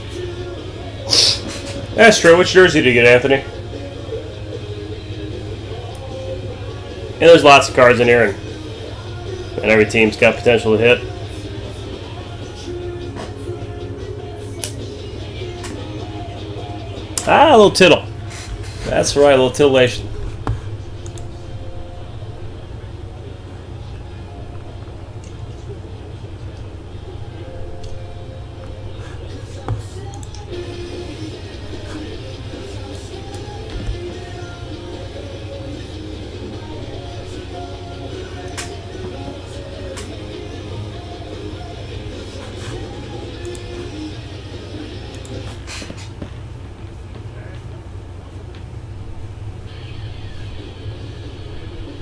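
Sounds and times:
quiet background music: 0:00.0 - 0:52.0
steady low hum: 0:00.0 - 0:52.0.

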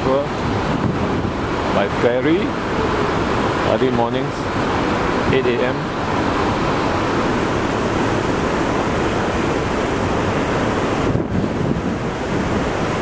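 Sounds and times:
water churning in ferry wake: 0:00.0 - 0:13.0
wind buffeting microphone: 0:00.0 - 0:13.0.

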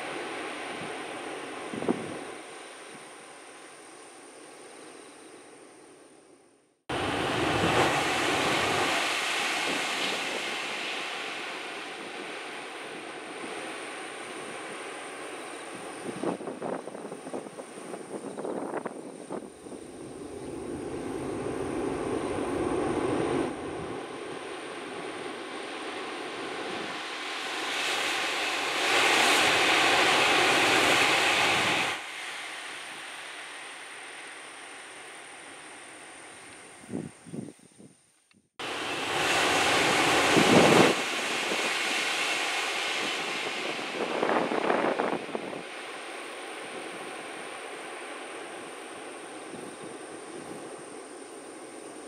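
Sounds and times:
high-speed train roaring past: 0:06.9 - 0:36.5, 0:38.6 - 0:52.0.

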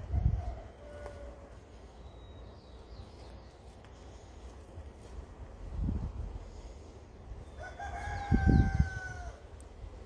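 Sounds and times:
rooster crowing: 0:00.0 - 0:01.7, 0:07.4 - 0:09.6.

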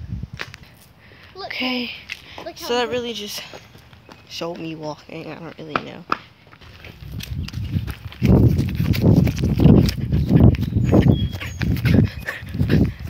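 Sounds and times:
footsteps: 0:00.3 - 0:13.0.

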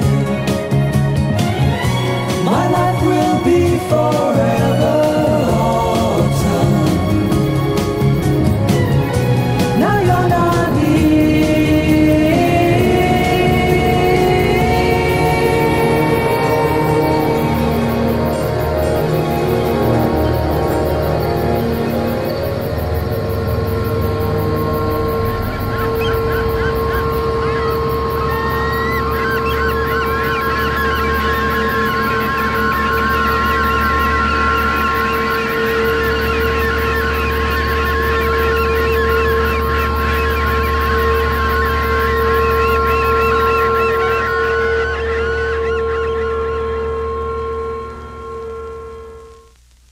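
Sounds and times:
steady drone of held tones: 0:00.0 - 0:49.9
warbling chattering pitch glides: 0:02.3 - 0:49.4.

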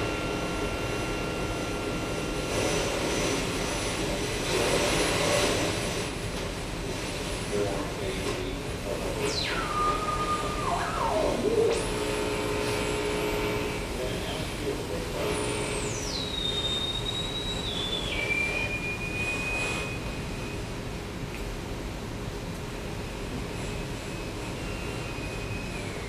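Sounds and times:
noisy electronic drone: 0:00.0 - 0:26.0
sweeping whistling tone: 0:09.3 - 0:11.6, 0:15.8 - 0:20.8, 0:23.6 - 0:26.0.

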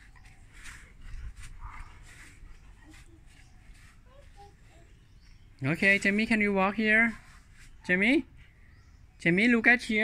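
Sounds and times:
dog panting faintly: 0:00.0 - 0:05.0.

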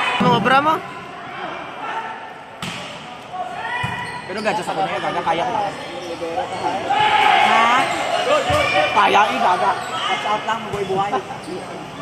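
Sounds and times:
voices around the court: 0:00.0 - 0:12.0
volleyball smack: 0:02.6 - 0:03.0.

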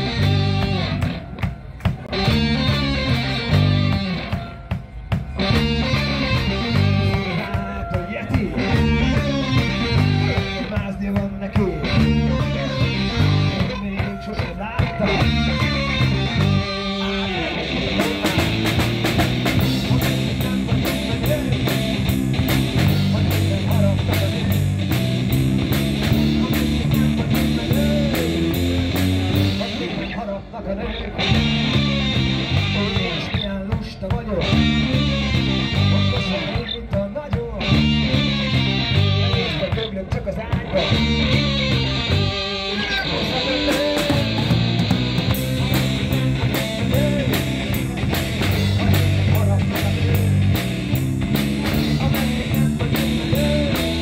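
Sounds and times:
drum kit beat: 0:00.0 - 0:30.0, 0:31.2 - 0:54.0
electric guitar riff: 0:00.0 - 0:33.7, 0:34.3 - 0:54.0
electric bass: 0:00.0 - 0:54.0.

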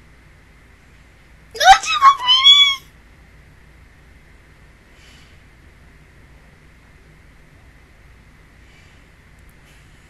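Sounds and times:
short high-pitched vocal call: 0:01.6 - 0:02.8.

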